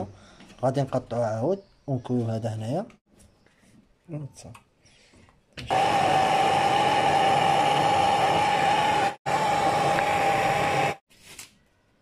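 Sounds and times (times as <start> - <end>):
gas torch flame hissing: 5.6 - 11.0.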